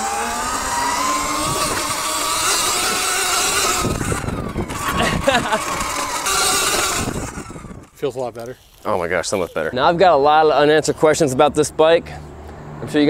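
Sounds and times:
wind noise: 0.0s - 8.0s
electric motor whining: 0.0s - 9.7s
tyre noise: 0.0s - 9.8s.

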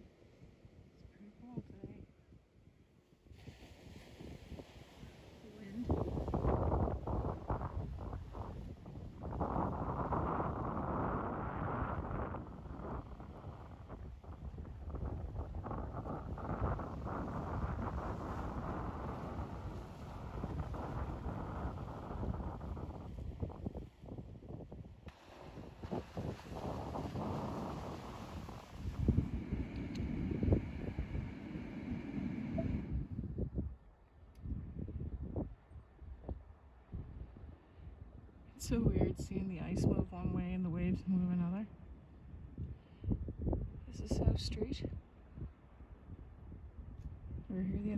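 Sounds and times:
wind buffeting microphone: 3.3s - 47.9s
waves washing onto rocks: 25.1s - 32.6s.

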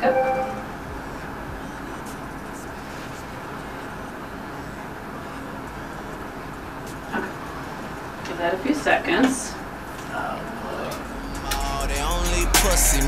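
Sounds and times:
steady background noise: 0.0s - 13.0s.

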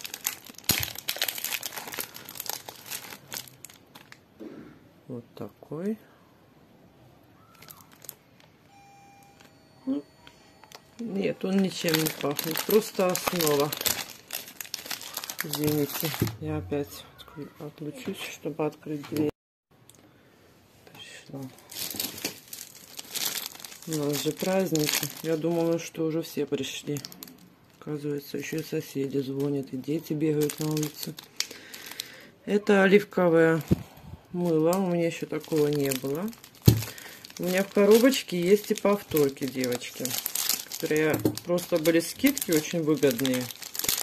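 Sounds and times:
wrapper crinkling and tearing: 0.0s - 4.2s, 7.4s - 8.5s, 10.6s - 16.4s, 21.3s - 32.2s, 34.4s - 44.0s.

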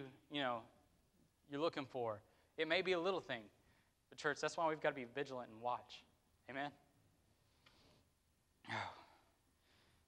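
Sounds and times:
faint breath: 7.4s - 10.0s
man sighing: 8.6s - 9.3s.

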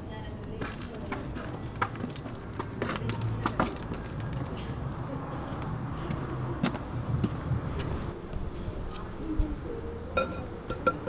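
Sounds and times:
hard-soled footstep on pavement: 0.4s - 9.1s.

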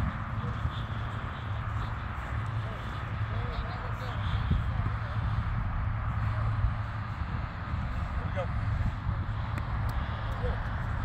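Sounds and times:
faint distant voices: 0.0s - 11.0s
wind on microphone: 0.0s - 11.0s.

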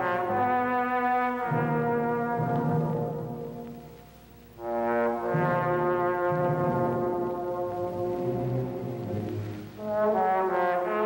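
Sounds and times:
shifting low notes: 4.6s - 10.1s.

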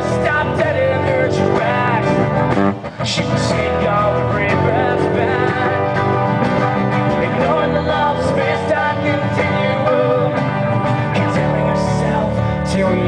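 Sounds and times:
person singing: 0.0s - 13.0s
strummed acoustic guitar: 0.0s - 13.0s.

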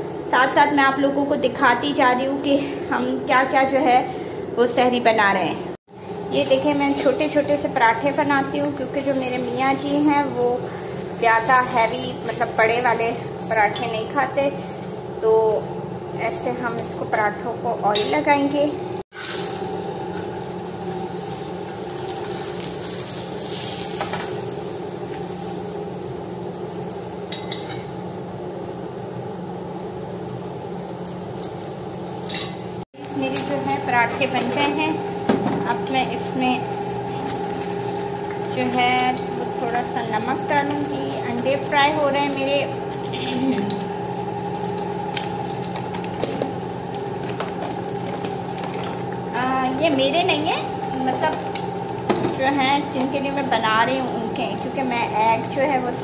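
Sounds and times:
flatbread sizzling in oil: 5.9s - 15.2s, 19.1s - 56.0s.

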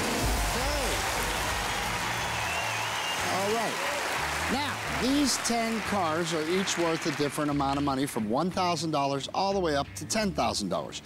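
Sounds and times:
audience applauding: 0.0s - 8.0s
game show music: 0.0s - 11.0s.

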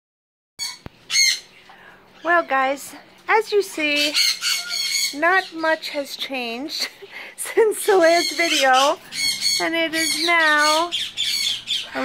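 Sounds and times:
parrot squawking: 0.6s - 2.8s, 3.8s - 6.0s, 7.9s - 12.0s.

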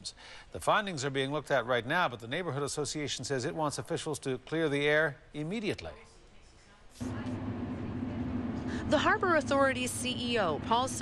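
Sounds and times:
low engine rumble: 7.0s - 11.0s.

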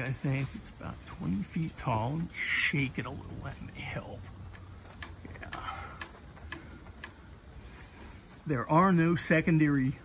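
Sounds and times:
bamboo leaves rustling: 0.0s - 10.0s
bamboo stems knocking together: 4.2s - 8.3s.

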